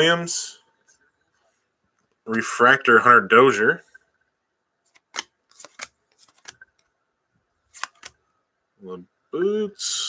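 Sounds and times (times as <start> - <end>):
cards clicking and snapping: 4.9 - 6.9, 7.7 - 8.2.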